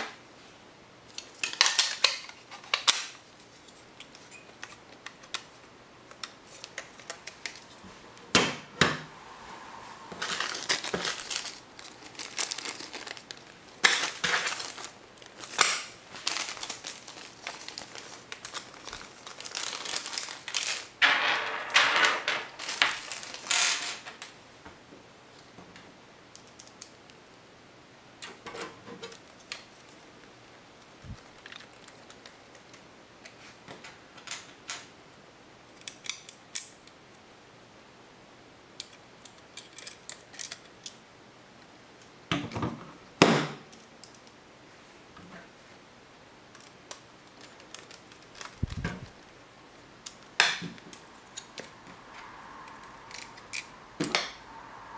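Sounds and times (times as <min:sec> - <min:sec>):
plastic bag crinkling: 0:10.1 - 0:21.0, 0:22.4 - 0:24.1, 0:31.0 - 0:32.7, 0:47.3 - 0:49.3.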